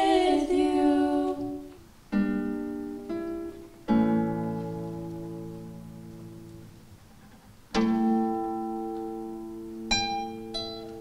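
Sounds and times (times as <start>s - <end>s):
nylon-string guitar chords plucked: 0.0s - 6.8s, 7.7s - 11.0s.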